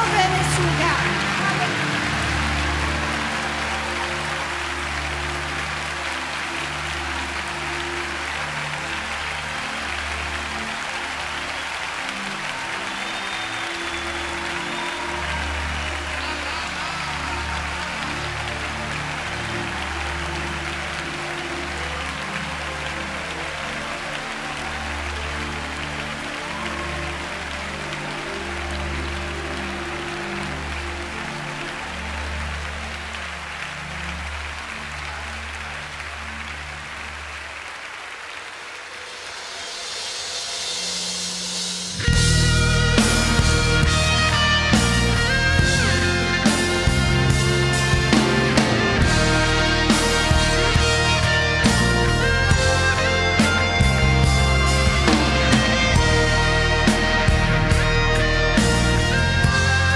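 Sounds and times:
congregation applauding: 0.0 - 59.9
band holding low chords: 42.0 - 59.9.

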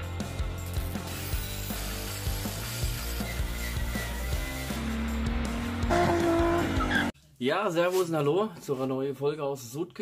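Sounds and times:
music: 0.0 - 7.2
car engine revving high: 5.0 - 7.1
tyres spinning and squealing: 5.9 - 7.1.

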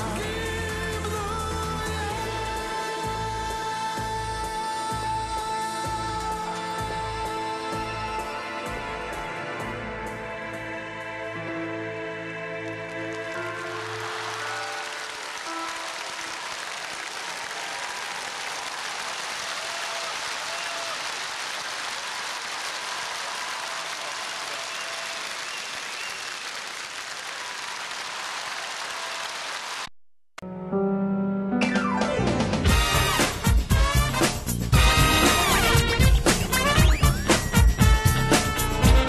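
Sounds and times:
audience applause: 12.6 - 29.9.

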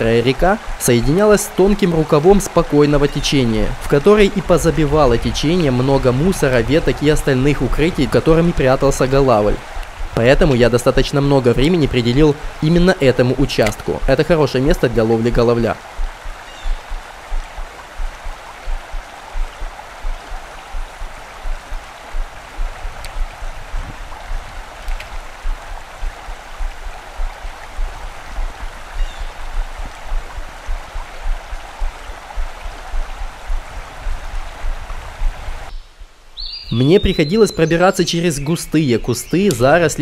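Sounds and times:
stream water rushing: 0.0 - 35.7.

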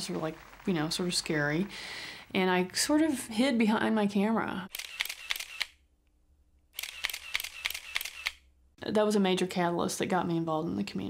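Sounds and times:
camera shutter clicking: 4.7 - 5.8, 6.8 - 8.5.

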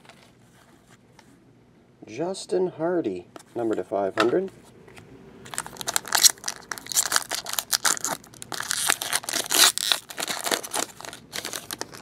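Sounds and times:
foil wrapper crinkling: 5.5 - 12.0.

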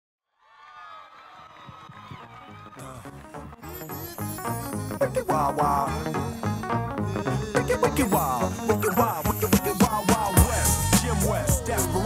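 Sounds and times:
audience cheering and whooping: 0.4 - 3.2.

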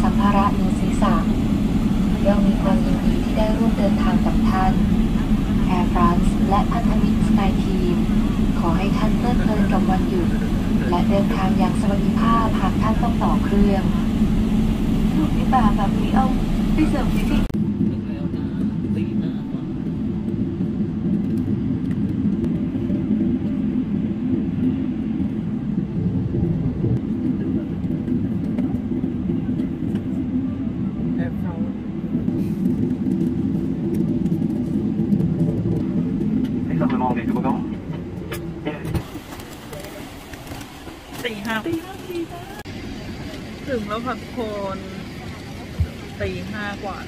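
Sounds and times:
voices: 0.0 - 19.9, 35.4 - 47.0
airliner cabin engine rumble: 0.0 - 47.0.

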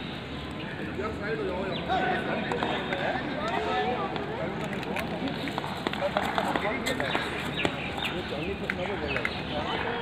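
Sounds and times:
outdoor noise: 0.0 - 10.0
people talking nearby: 0.4 - 10.0.

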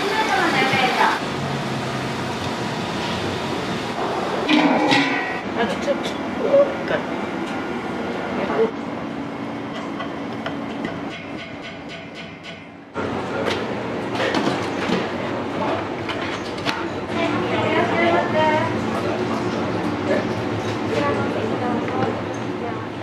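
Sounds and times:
voices: 0.0 - 1.2, 15.1 - 23.0
rumble of running kitchen equipment: 0.0 - 23.0
metal pots and utensils clinking: 4.4 - 6.2.

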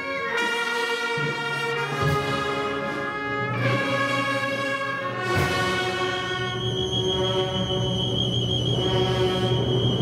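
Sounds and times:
brass band sustained chord: 0.0 - 6.5.

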